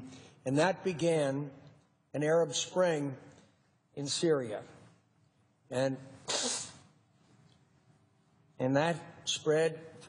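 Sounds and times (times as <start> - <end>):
man blowing his nose: 6.3 - 6.9.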